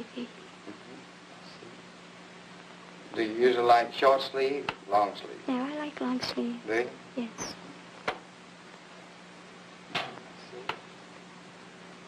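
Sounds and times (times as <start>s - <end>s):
film soundtrack hum and hiss: 0.0s - 12.0s.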